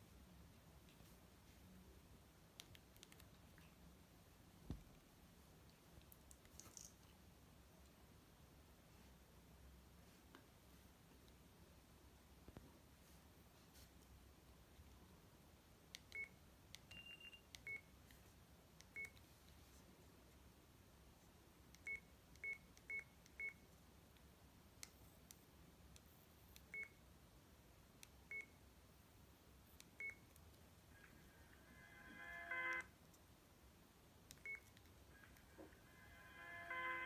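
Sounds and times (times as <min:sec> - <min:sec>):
phone keypad beeps: 0:16.1 - 0:17.9, 0:32.0 - 0:32.9, 0:34.4 - 0:35.5
phone ringtone: 0:31.0 - 0:32.9, 0:35.1 - 0:37.0.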